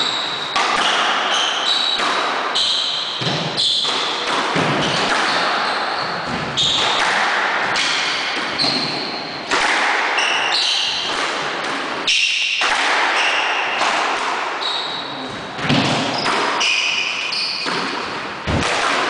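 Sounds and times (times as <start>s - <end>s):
squash ball hitting rackets and walls: 0.0s - 19.0s
shoes squeaking on wooden floor: 8.5s - 9.3s.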